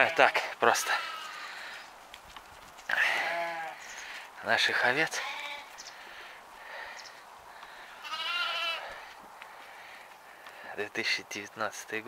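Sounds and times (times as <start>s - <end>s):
sheep bleating: 0.0s - 1.6s, 2.9s - 3.9s, 4.9s - 5.8s, 7.9s - 9.1s.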